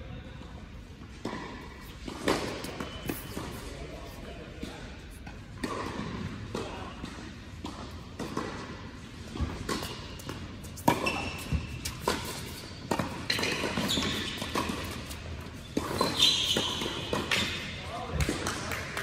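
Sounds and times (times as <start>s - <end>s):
racket hitting tennis ball: 1.0s - 3.8s, 4.5s - 18.6s
ball bouncing on hard court: 1.1s - 3.7s, 5.6s - 18.8s.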